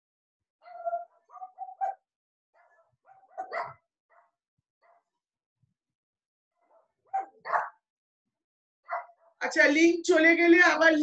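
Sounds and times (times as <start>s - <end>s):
dog barking: 0.6s - 5.2s, 6.6s - 7.9s, 8.8s - 9.4s.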